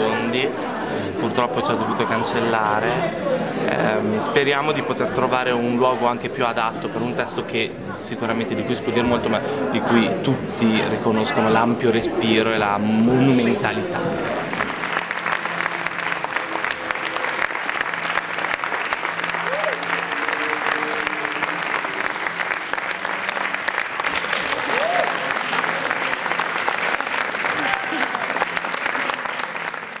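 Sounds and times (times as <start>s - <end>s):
audience applauding: 14.1s - 30.0s
voices rising above clapping: 14.1s - 30.0s.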